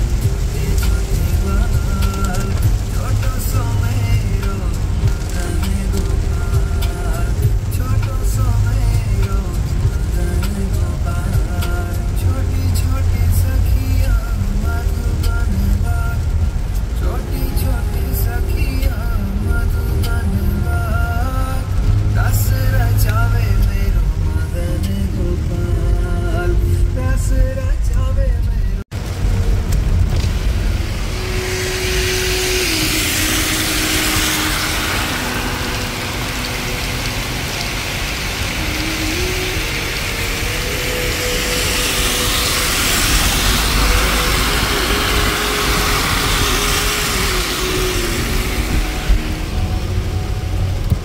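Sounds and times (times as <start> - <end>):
steady hiss: 0.0 - 27.6, 29.0 - 51.0
vehicle low rumble: 0.0 - 51.0.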